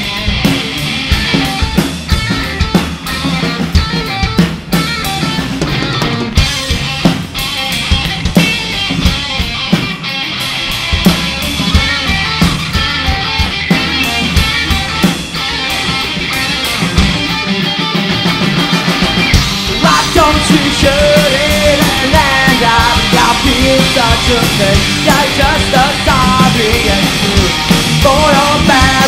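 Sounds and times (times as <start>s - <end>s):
drum kit beat: 0.0s - 29.0s
electric guitars: 0.0s - 29.0s.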